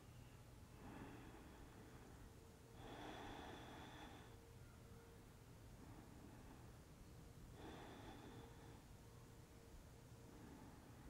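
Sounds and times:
faint breath: 0.0 - 11.0.

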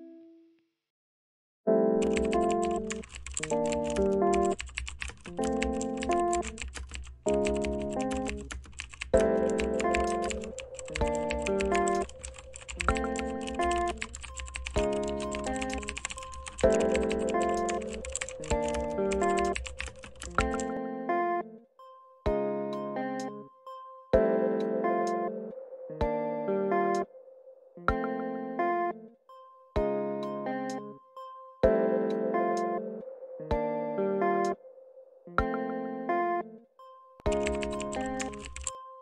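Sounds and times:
background music chords: 1.7 - 4.7, 5.3 - 27.1, 27.8 - 34.6, 35.4 - 39.0
rapid keyboard typing: 2.0 - 20.7, 37.3 - 38.7.

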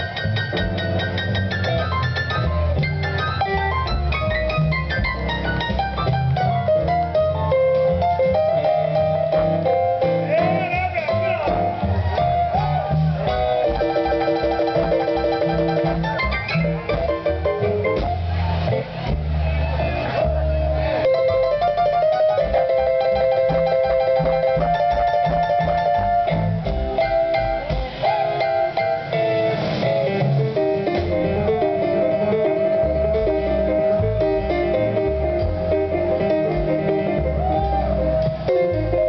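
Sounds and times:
lead instrument bending notes: 0.0 - 19.2, 20.2 - 39.0
drums: 0.0 - 39.0
upright bass plucking: 0.0 - 39.0.

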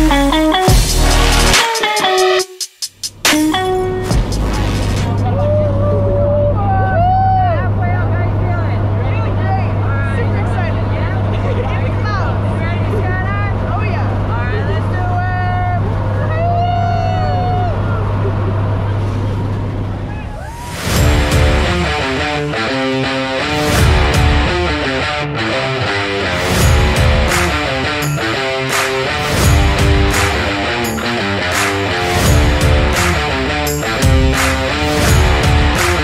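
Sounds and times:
music: 0.0 - 5.9, 20.7 - 36.0.

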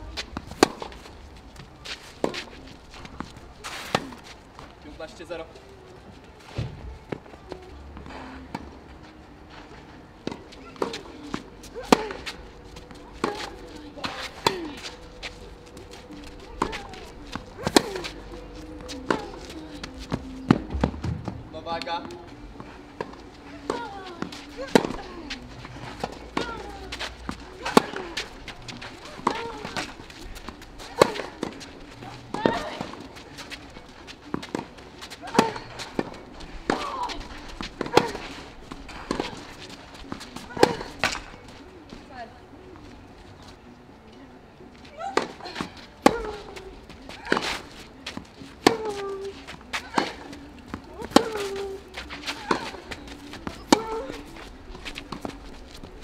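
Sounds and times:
tennis racket hitting ball: 0.3 - 1.0, 13.2 - 15.0, 16.5 - 18.2, 18.8 - 21.4, 23.0 - 41.3, 45.0 - 55.9.

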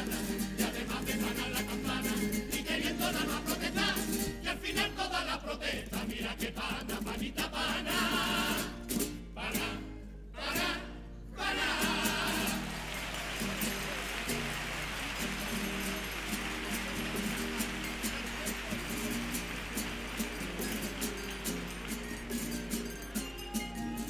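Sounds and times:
massed voices singing: 0.0 - 12.8
strummed guitars: 0.0 - 24.0
audience applause: 11.9 - 22.8.

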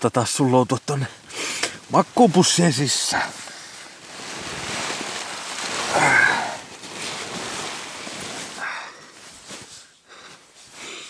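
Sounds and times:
sleeping bag fabric rustling: 1.2 - 11.0
person sighing: 5.8 - 6.7.

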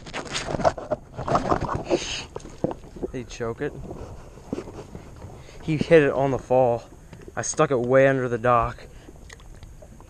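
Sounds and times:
knocks and clatter on kayak: 0.2 - 8.8.

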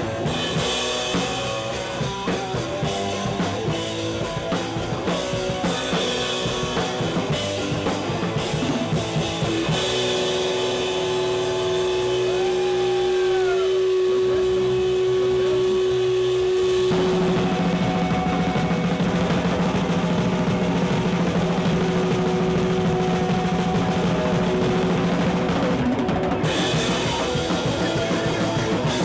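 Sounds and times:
hardcore band playing loud: 0.0 - 29.0
pounding drums: 0.0 - 29.0.

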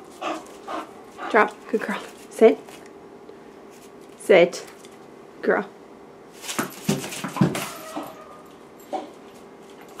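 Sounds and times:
dog whining: 7.4 - 9.2.

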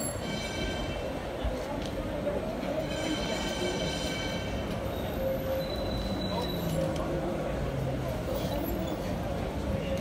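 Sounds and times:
tram wheels squealing on rails: 0.0 - 9.6
street noise: 0.0 - 10.0.

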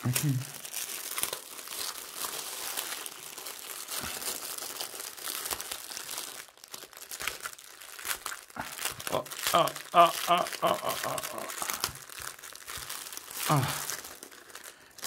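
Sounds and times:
plastic bags crinkling: 0.0 - 15.0.

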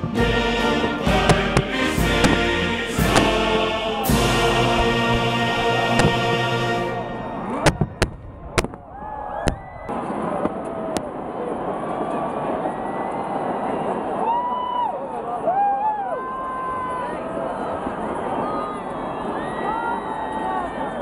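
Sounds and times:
fireworks bangs: 0.0 - 10.6
crowd chatter and shouts: 2.3 - 21.0.

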